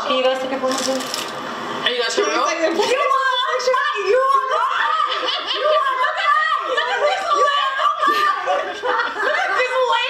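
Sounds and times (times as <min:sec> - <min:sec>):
people chattering: 0:00.0 - 0:10.0
people laughing: 0:02.6 - 0:10.0.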